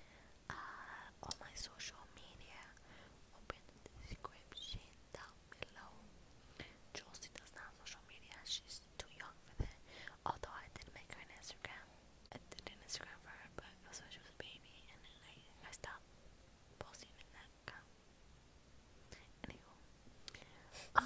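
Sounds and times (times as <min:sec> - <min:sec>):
woman whispering: 0:00.5 - 0:06.1, 0:06.9 - 0:16.0, 0:16.8 - 0:17.9, 0:19.1 - 0:19.8, 0:20.4 - 0:21.0.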